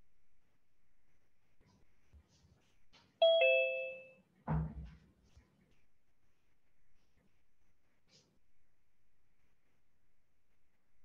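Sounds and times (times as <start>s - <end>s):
two-note ding-dong chime: 3.2s - 4.1s.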